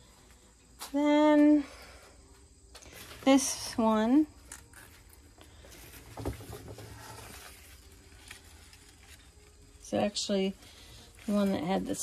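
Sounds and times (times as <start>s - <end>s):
leaves rustling: 2.9s - 12.0s.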